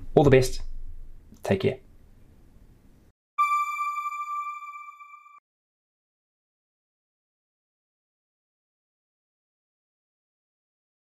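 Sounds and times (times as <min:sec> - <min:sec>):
high electronic chime tone: 0:03.4 - 0:05.4.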